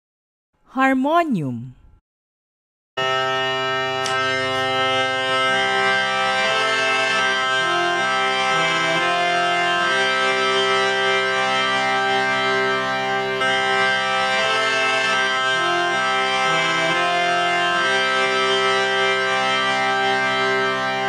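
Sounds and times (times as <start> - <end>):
harmonium melody: 3.0 - 21.0.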